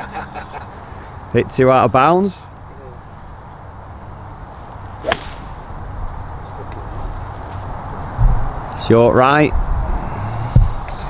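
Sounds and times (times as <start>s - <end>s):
golf iron striking ball: 4.8s - 5.8s.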